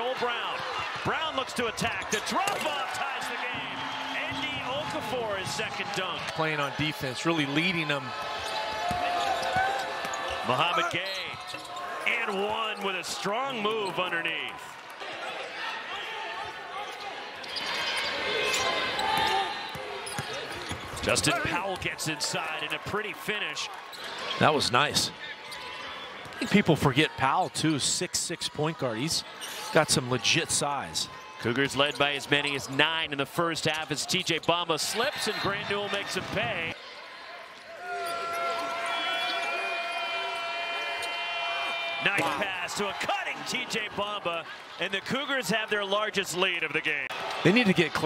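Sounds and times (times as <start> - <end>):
arena crowd noise: 0.0 - 48.0
sneakers squeaking: 7.6 - 12.1, 16.8 - 21.6.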